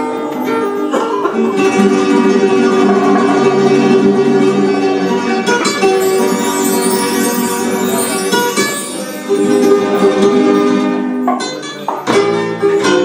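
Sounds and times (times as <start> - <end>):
flamenco guitars playing: 0.0 - 13.0.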